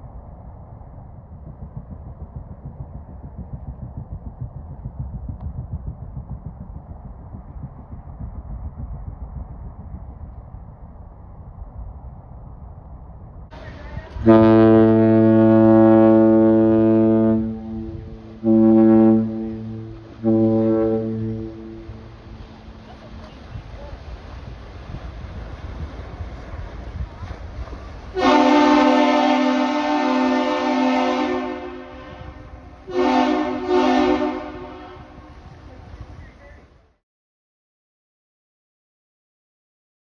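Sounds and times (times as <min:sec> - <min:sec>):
low rumble: 0:00.0 - 0:36.9
ship horn blast: 0:13.6 - 0:24.1, 0:28.1 - 0:35.7.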